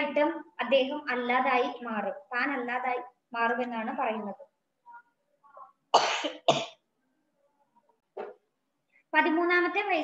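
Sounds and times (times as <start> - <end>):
woman coughing: 5.9 - 6.8.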